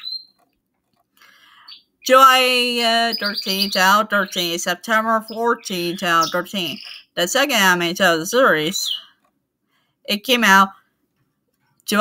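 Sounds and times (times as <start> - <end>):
bird chirps: 0.0 - 0.4, 1.2 - 7.8, 8.4 - 9.2.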